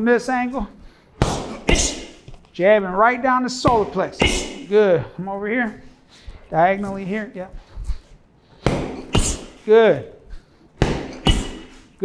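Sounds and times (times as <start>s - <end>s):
boxing glove thuds: 1.2s - 2.4s, 8.6s - 9.6s, 10.8s - 11.8s.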